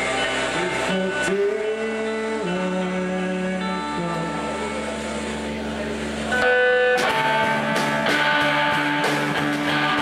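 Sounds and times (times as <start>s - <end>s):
electric guitar chords: 0.0s - 10.0s
live rock band music: 0.0s - 10.0s.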